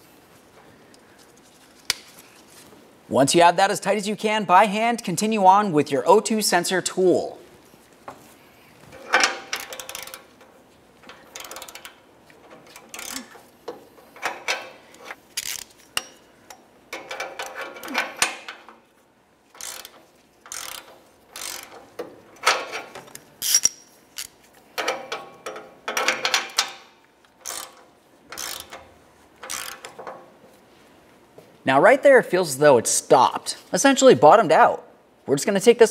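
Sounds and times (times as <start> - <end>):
ratchet clicking: 9.0 - 18.6, 19.5 - 26.8, 27.4 - 30.1.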